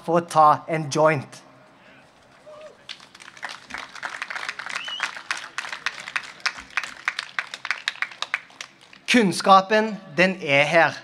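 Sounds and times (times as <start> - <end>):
crowd applause: 2.5 - 9.1.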